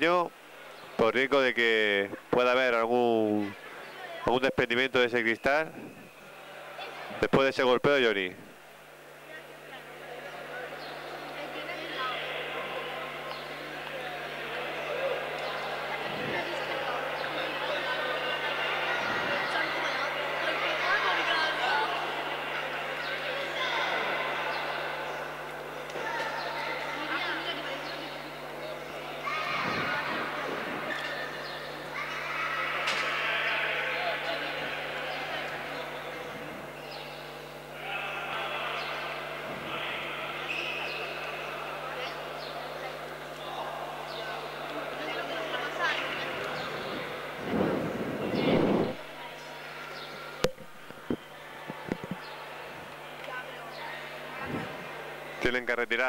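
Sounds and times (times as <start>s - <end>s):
voices echoing in a sports hall: 0.0s - 56.0s.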